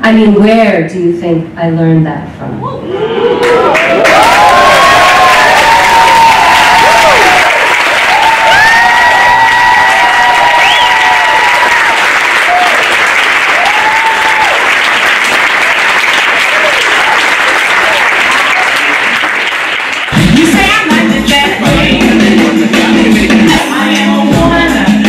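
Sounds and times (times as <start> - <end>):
audience applauding: 3.4 - 20.2
recorded music with heavy bass: 20.1 - 25.0.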